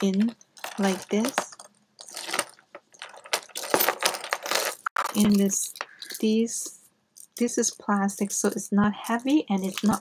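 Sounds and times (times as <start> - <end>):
chain strap clinking and rattling: 0.0 - 6.4.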